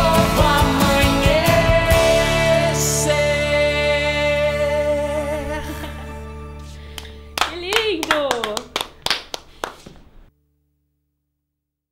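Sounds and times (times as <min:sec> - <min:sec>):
scattered hand claps: 0:06.9 - 0:10.1.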